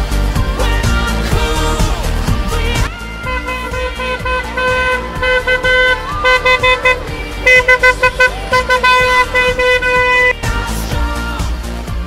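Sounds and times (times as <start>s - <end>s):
car horn honking: 3.0s - 10.7s.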